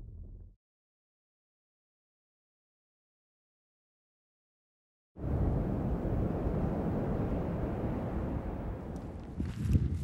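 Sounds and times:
wind buffeting microphone: 5.2s - 10.0s.

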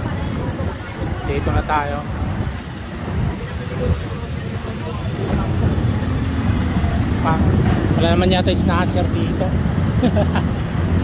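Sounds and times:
passing vehicle engines rumbling: 0.0s - 11.0s.

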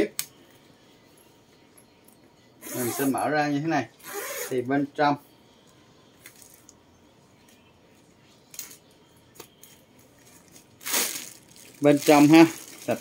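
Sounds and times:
bubble-wrap rustle: 10.2s - 13.0s.

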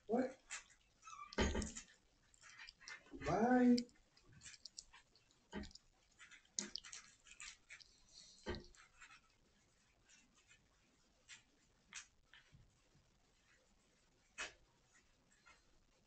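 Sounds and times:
soft rustles and clicks: 0.3s - 16.0s.

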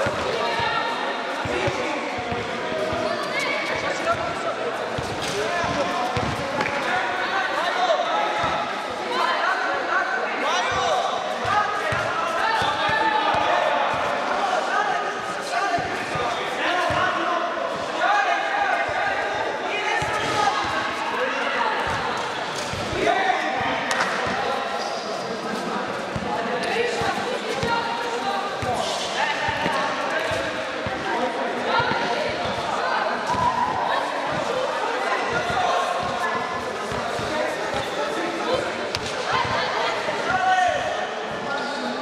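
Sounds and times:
basketball bouncing on court: 5.0s - 6.7s.

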